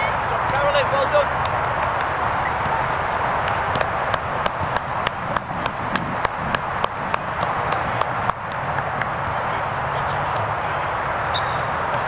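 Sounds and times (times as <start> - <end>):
rhythmic hand clapping: 1.4 - 2.2, 2.8 - 9.3.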